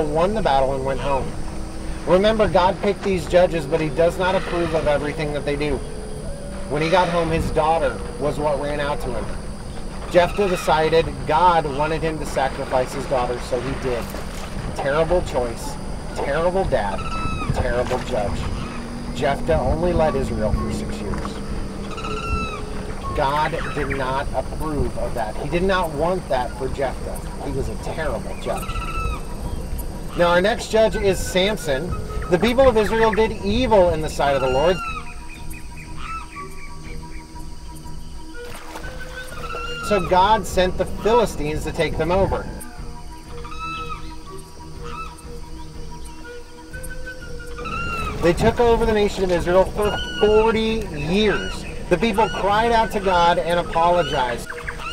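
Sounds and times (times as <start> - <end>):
steady low rumble: 0.0 - 34.1
background music: 0.0 - 54.9
high-pitched animal call: 3.9 - 11.8, 15.7 - 24.6, 28.4 - 29.4, 34.1 - 35.3, 35.9 - 36.5, 38.9 - 41.1, 42.2 - 54.9.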